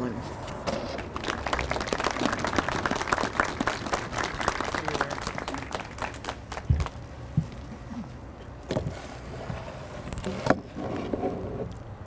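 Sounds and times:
audience applauding: 1.0 - 7.0.

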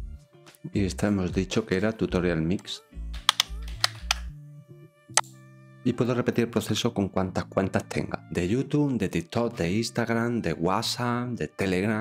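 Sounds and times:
soft background music: 0.0 - 12.0
keyboard key clicks: 3.2 - 4.3.

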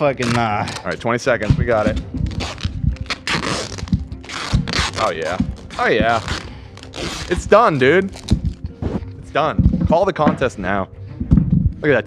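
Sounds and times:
tape pulled off a roll: 0.2 - 9.2.

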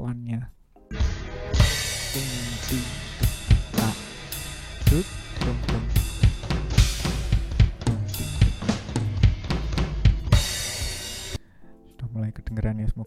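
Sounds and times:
band sustained chords: 0.9 - 11.4
cymbal crashes: 0.9 - 11.4
fast drum fill: 1.1 - 11.4.

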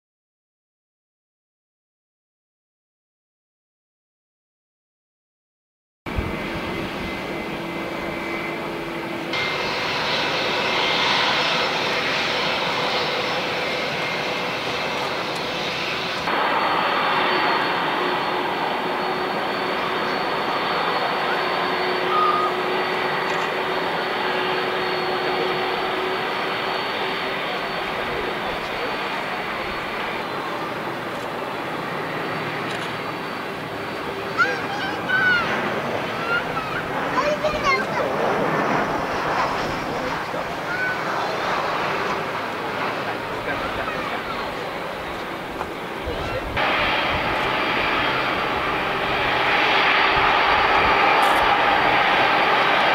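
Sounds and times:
distant jet engine rumble: 6.1 - 52.9
thin high whine: 15.9 - 30.4.

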